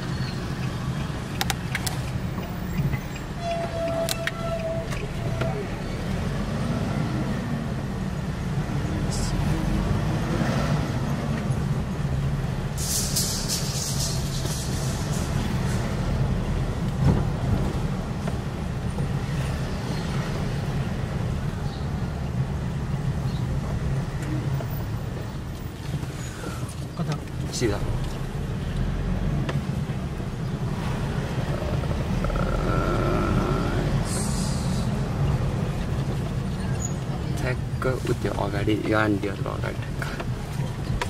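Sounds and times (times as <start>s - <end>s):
car engine and road rumble: 0.0s - 41.0s.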